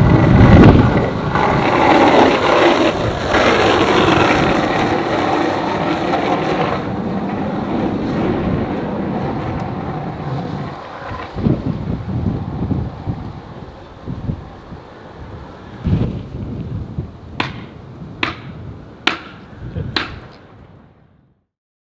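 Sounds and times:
low rumbles: 0:00.0 - 0:21.0
skateboard wheels rolling on asphalt: 0:00.0 - 0:21.4.

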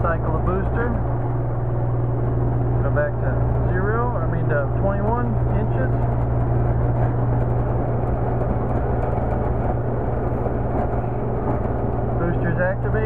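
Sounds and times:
vacuum pump humming: 0:00.0 - 0:13.0.

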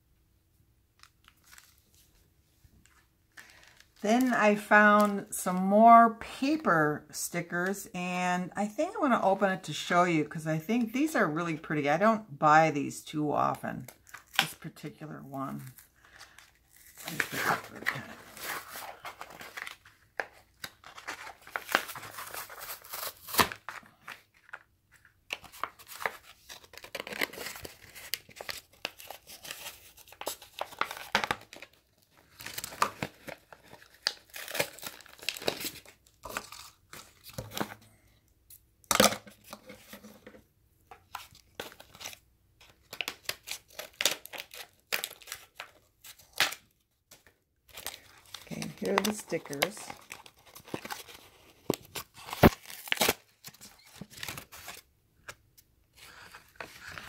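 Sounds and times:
plastic bag crinkling and tearing: 0:15.6 - 0:37.6, 0:41.0 - 0:54.9.

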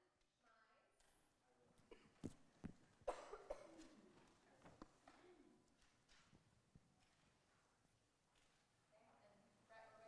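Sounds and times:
person coughing: 0:03.1 - 0:03.9.

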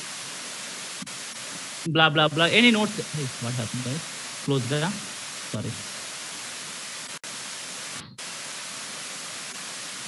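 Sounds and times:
static hiss: 0:00.0 - 0:10.0.

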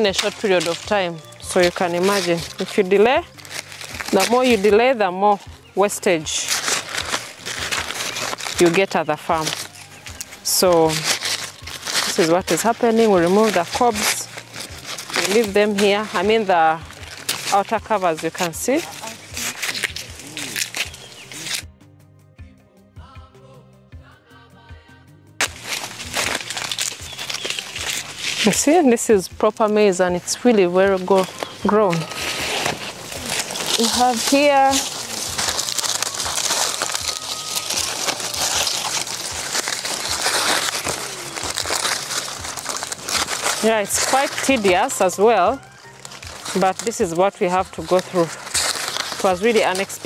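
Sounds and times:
dry maize husks rustling: 0:00.0 - 0:21.7, 0:25.4 - 0:50.0
background music with steady beat: 0:00.0 - 0:50.0.

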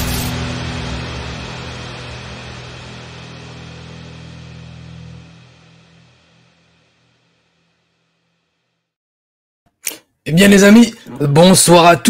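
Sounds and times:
loud music hit: 0:00.0 - 0:07.4
low held music drone: 0:00.0 - 0:08.0.

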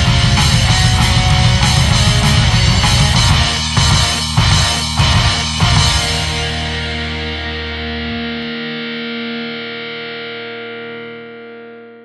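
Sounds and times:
distorted electric guitar metal music: 0:00.0 - 0:12.0.

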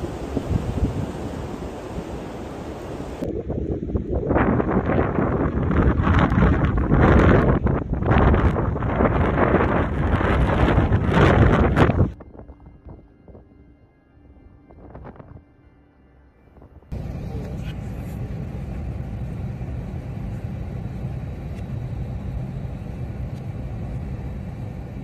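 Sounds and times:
wind buffeting microphone: 0:00.0 - 0:13.5, 0:14.7 - 0:15.4.

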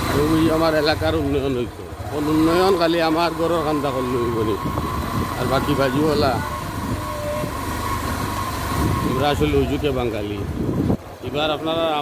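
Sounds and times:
man speaking: 0:05.4 - 0:06.6, 0:09.1 - 0:10.5.

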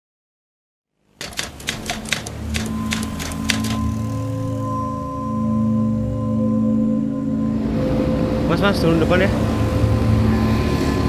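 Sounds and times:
typing key clicks: 0:01.2 - 0:03.9
low steady drone: 0:02.2 - 0:11.0.

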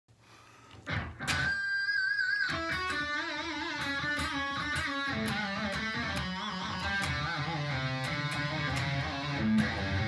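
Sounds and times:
noise on guitar strings: 0:02.5 - 0:10.0.

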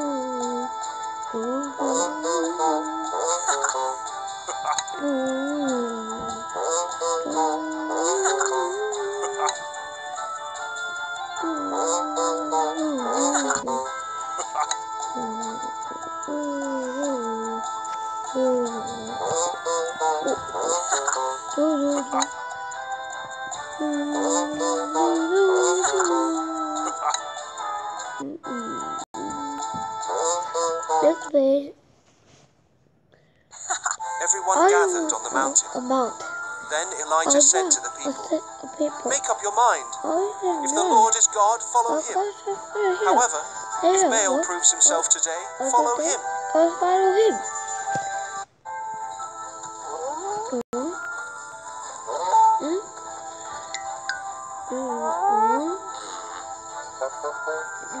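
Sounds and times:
cartoon character voice: 0:00.0 - 0:00.7, 0:01.4 - 0:04.0, 0:04.6 - 0:09.6, 0:11.4 - 0:13.9, 0:15.2 - 0:17.7, 0:18.3 - 0:22.3, 0:23.8 - 0:27.1, 0:30.9 - 0:31.7, 0:34.4 - 0:47.4, 0:54.7 - 0:56.3
gliding melody over held chords: 0:00.0 - 0:31.3, 0:34.1 - 0:58.0
children's background music: 0:00.0 - 0:31.8, 0:33.6 - 0:58.0.

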